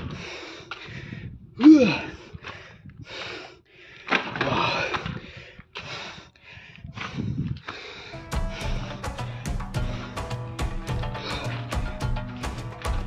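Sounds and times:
person panting heavily: 0.0s - 13.0s.

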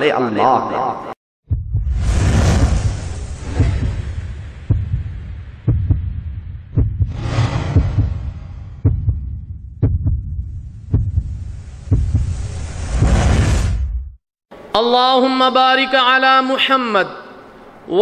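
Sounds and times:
deep thud: 1.5s - 12.3s
steady low hum: 1.5s - 13.2s
rushing whoosh: 1.6s - 5.7s, 7.0s - 8.8s.

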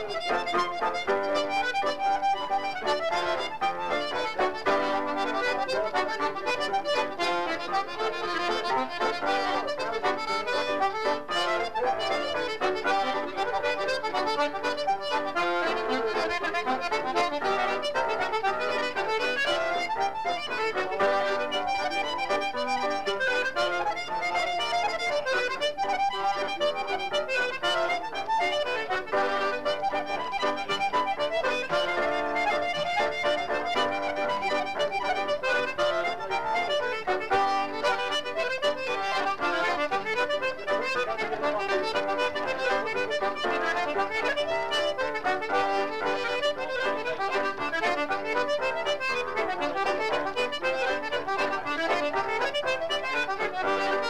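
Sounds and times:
accordion playing fast reel: 0.0s - 54.0s.

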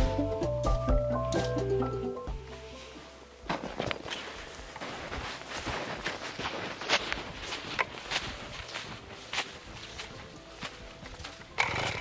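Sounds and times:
footsteps crunching in snow: 2.4s - 12.0s.

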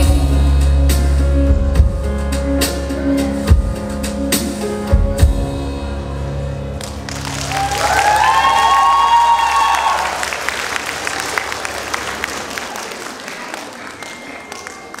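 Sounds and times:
audience applauding: 6.8s - 15.0s
high cheer from one voice: 7.4s - 11.6s.

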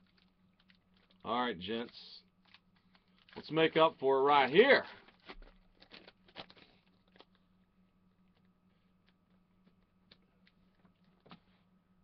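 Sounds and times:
plastic wrapper crackling: 0.0s - 1.3s, 2.4s - 7.4s.

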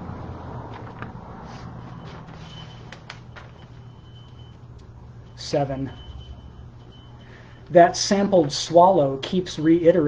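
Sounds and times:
low background hum: 0.0s - 10.0s
faint high whine: 1.8s - 10.0s.

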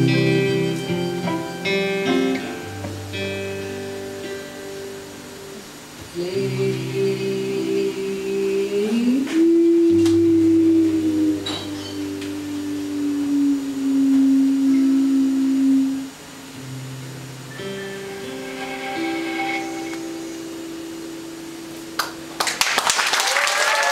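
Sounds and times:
live band holding chords: 0.0s - 22.5s
audience clapping: 22.0s - 23.9s.

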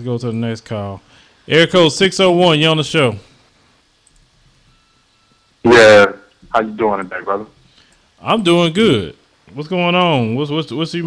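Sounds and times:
faint thin steady tone: 3.0s - 8.0s
faint clicks: 4.0s - 4.3s
man speaking into a microphone: 5.7s - 7.5s.

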